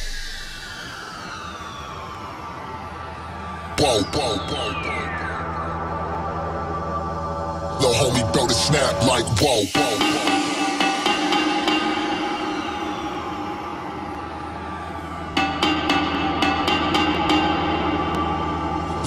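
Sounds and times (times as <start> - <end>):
synth chord over bass: 3.4 - 19.0.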